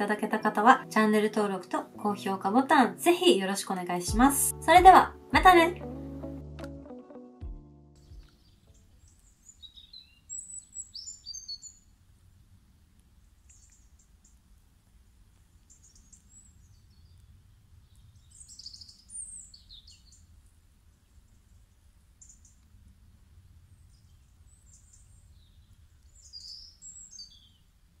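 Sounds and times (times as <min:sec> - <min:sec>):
faint birdsong: 0:08.0 - 0:28.0.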